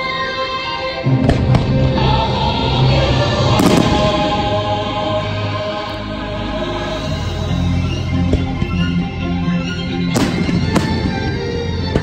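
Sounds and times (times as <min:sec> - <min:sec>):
loud show music: 0:00.0 - 0:12.0
fireworks bursting with bangs: 0:03.5 - 0:04.6, 0:10.1 - 0:12.0.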